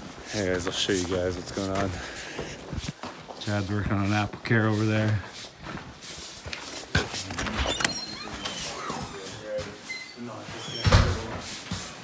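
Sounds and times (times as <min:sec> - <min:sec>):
footsteps: 0:00.0 - 0:12.0
door opening and shutting: 0:07.3 - 0:11.4.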